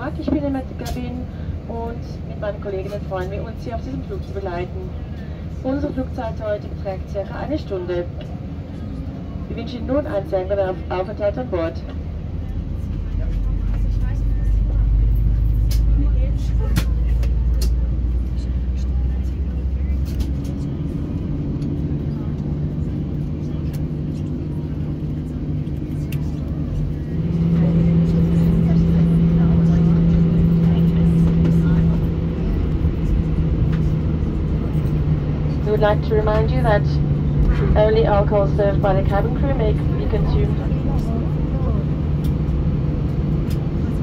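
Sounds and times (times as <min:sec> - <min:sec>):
jet engines humming: 0:00.0 - 0:44.0
loud low cabin rumble: 0:00.0 - 0:44.0.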